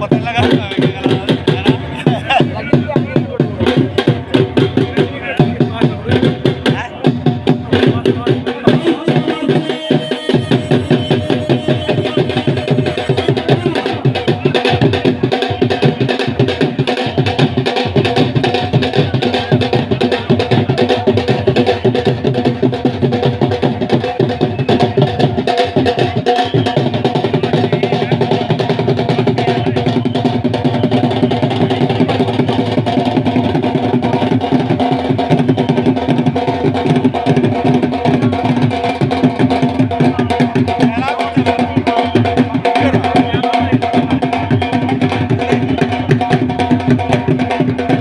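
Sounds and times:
dhol drum beating fast rhythm: 0.0s - 48.0s.

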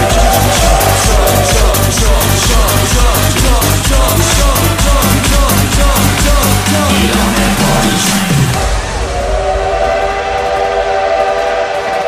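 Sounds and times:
train whistle chord: 8.8s - 12.0s.

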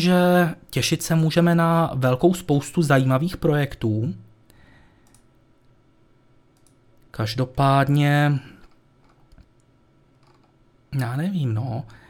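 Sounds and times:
man talking: 0.0s - 4.3s, 7.1s - 8.6s, 10.9s - 12.0s
faint sharp clicks: 4.5s - 5.8s, 6.6s - 6.8s.

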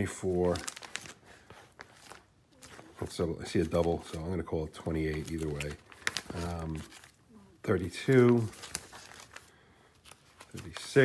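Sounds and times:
plastic binder pages turning: 0.0s - 11.0s.

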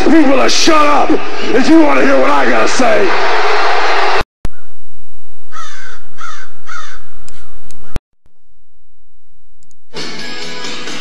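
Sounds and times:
crow cawing: 5.5s - 7.1s.

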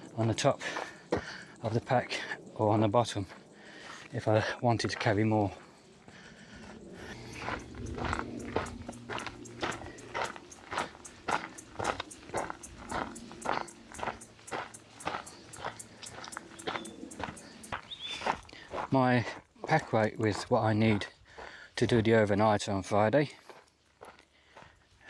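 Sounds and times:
footsteps on dirt and leaves: 3.2s - 22.1s, 23.0s - 25.0s.

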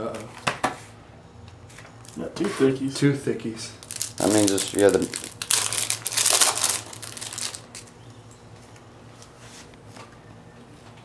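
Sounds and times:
plastic packaging crinkling: 3.8s - 8.0s.

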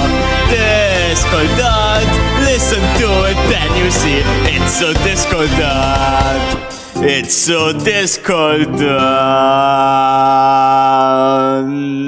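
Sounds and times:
man singing long held note: 0.4s - 12.0s.

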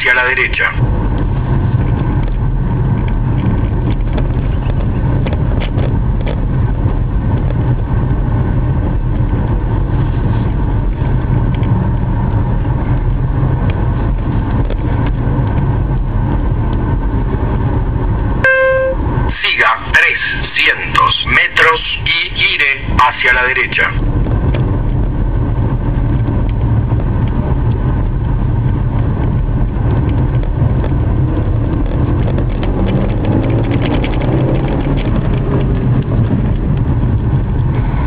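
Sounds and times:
car engine and road noise: 0.0s - 38.0s
short horn-like tone: 18.4s - 19.1s.

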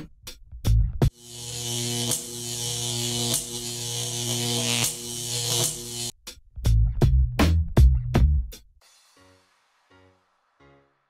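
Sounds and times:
electronic buzzing drone: 1.1s - 6.1s.

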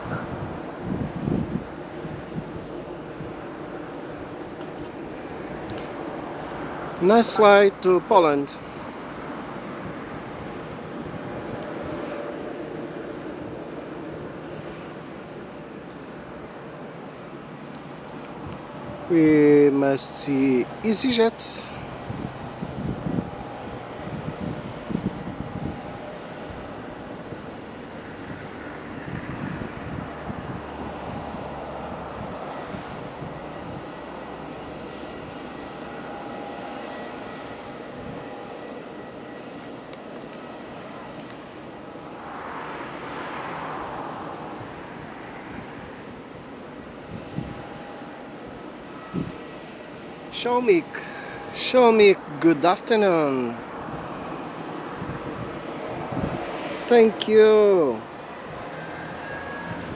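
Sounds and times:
jet engines idling: 0.0s - 59.9s.

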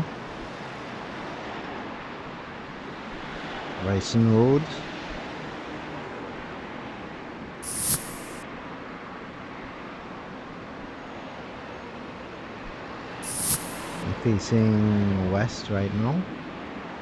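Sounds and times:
short loud hiss: 7.6s - 8.4s, 13.2s - 14.0s
road traffic noise: 13.2s - 14.4s.

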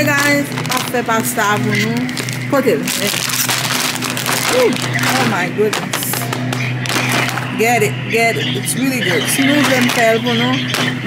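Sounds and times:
plastic packaging rustling: 0.0s - 7.6s, 8.9s - 11.0s
steady low hum: 0.0s - 11.0s.

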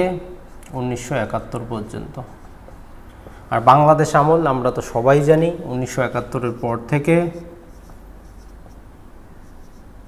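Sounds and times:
low room hum: 0.0s - 10.0s
marker squeaking on whiteboard: 2.1s - 3.0s, 6.0s - 10.0s.

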